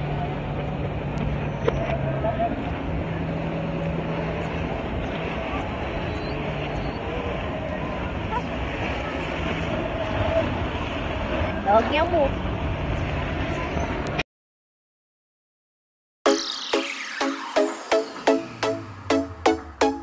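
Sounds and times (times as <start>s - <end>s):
faint distant voices: 1.8s - 14.1s.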